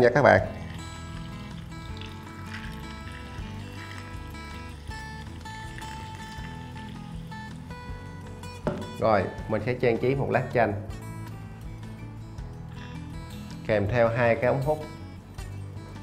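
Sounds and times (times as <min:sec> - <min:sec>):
background music held notes: 0:00.0 - 0:16.0
soda trickling into glass: 0:00.4 - 0:08.0.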